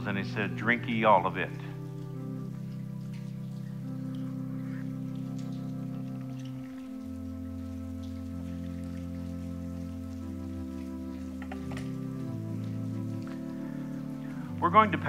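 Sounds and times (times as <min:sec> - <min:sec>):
sustained keyboard chords: 0:00.0 - 0:15.0.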